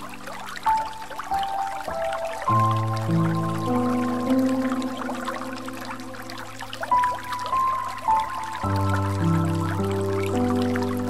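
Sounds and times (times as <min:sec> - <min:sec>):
soft held music tones: 0:00.0 - 0:11.0
water trickling and gurgling: 0:00.0 - 0:11.0.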